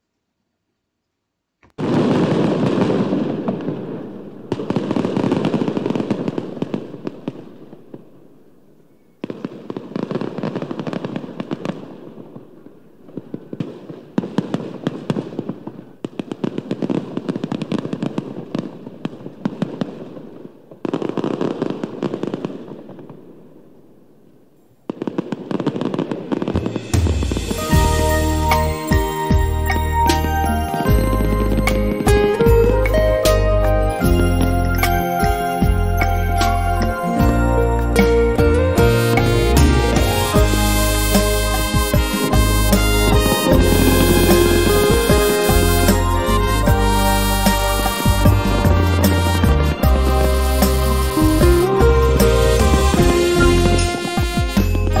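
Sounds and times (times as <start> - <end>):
dense crackling bursts: 1.6 - 24.0, 24.8 - 55.0
music: 26.6 - 55.0.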